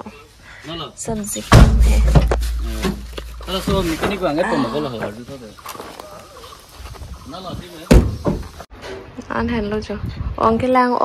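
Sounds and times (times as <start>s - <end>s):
low rumble: 1.6s - 4.4s.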